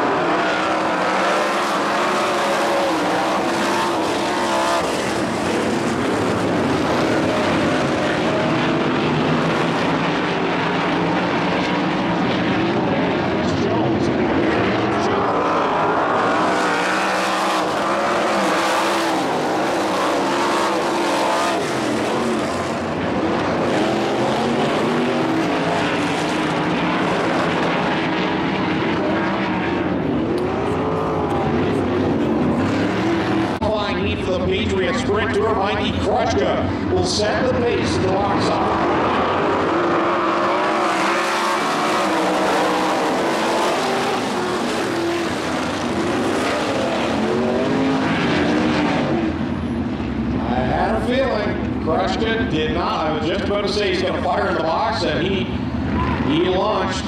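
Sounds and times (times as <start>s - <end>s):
race car engines: 0.0s - 57.0s.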